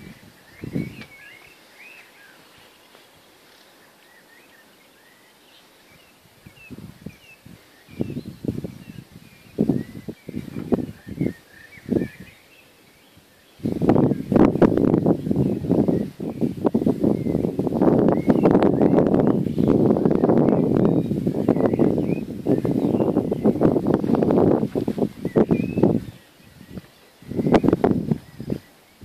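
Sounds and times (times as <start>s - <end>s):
wind buffeting microphone: 0.0s - 1.6s, 5.9s - 29.0s
birds chirping: 0.0s - 29.0s.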